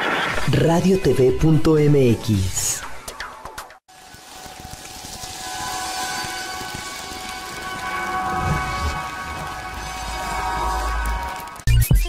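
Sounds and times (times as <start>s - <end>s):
rain-like rushing hiss: 3.9s - 11.7s.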